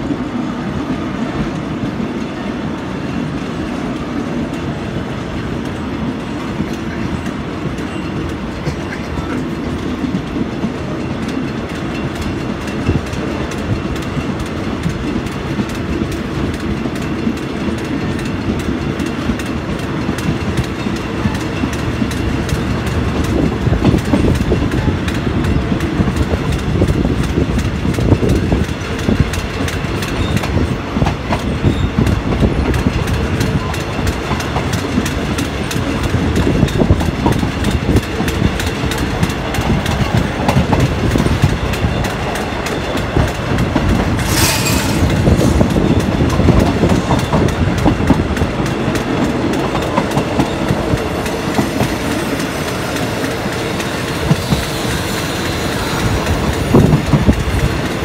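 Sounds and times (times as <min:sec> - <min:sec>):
train rumble inside carriage: 0:00.0 - 0:58.0.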